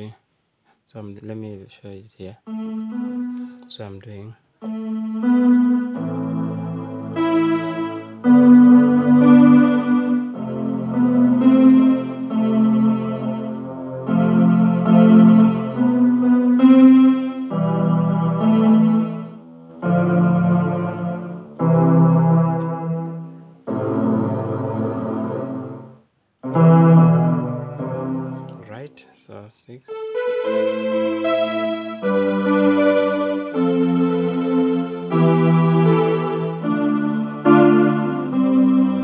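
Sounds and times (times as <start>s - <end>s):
electronic keyboard strings chords: 2.5s - 28.9s, 29.9s - 39.0s.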